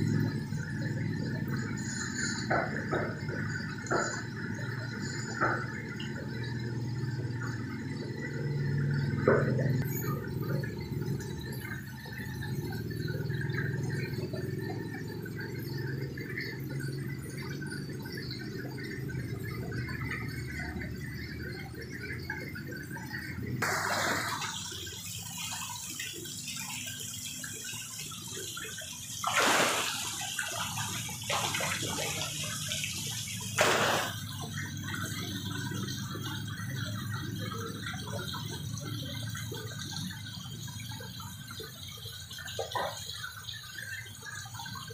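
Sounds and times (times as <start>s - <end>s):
water pouring into a tank: 0.0s - 44.9s
fish thrashing and splashing: 23.6s - 26.4s, 28.3s - 35.0s.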